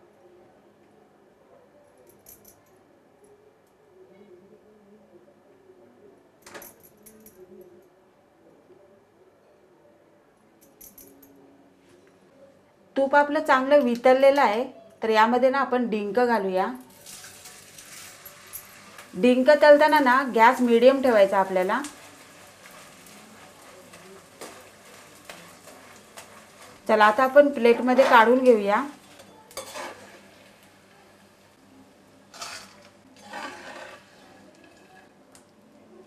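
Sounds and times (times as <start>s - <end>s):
bangles jingling: 10.6s - 11.4s
frying sizzle: 16.9s - 35.4s
steel spoon clinking on bowl: 29.0s - 30.2s.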